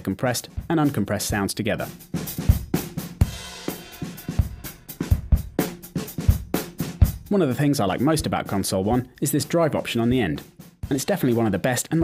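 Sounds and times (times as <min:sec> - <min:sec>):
drum loop: 0:00.0 - 0:12.0.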